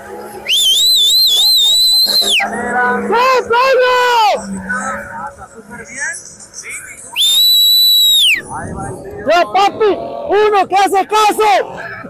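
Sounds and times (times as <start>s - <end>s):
voices: 0.0s - 12.0s
long shrill whistle blast: 0.4s - 2.4s, 7.2s - 8.4s.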